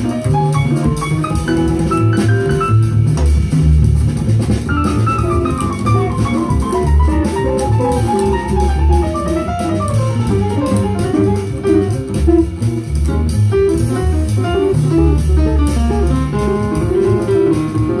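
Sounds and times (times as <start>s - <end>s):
jazz guitar: 0.0s - 18.0s
jazz piano: 0.0s - 18.0s
upright bass: 0.0s - 18.0s.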